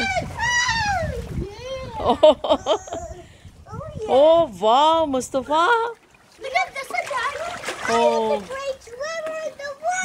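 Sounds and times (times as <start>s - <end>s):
water splashing in paddling pool: 0.0s - 2.9s, 3.7s - 10.0s
children's voices: 0.0s - 4.3s, 6.3s - 10.0s.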